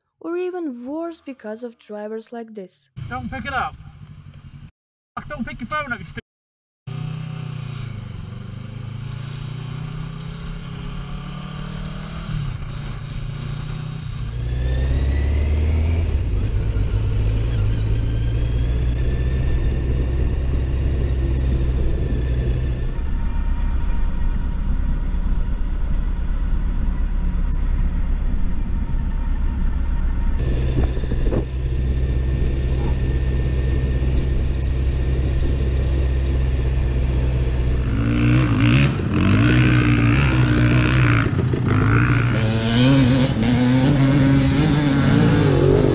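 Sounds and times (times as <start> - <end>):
traffic: 2.9 - 6.2, 6.9 - 45.9
motorcycle engine running: 6.9 - 45.9.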